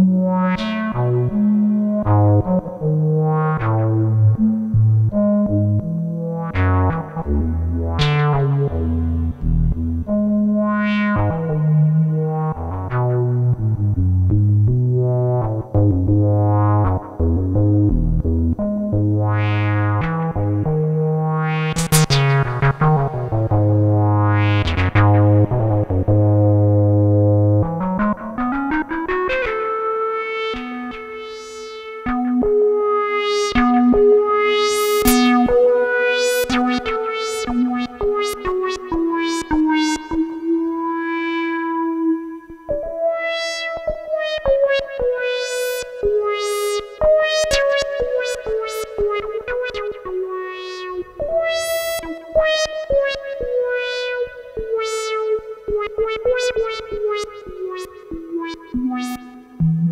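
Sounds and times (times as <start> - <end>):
synthesizer bass note gliding: 3.2 - 28.2, 29.2 - 42.4, 45.3 - 59.9
synthesizer sliding melody: 29.1 - 42.4, 45.3 - 59.9.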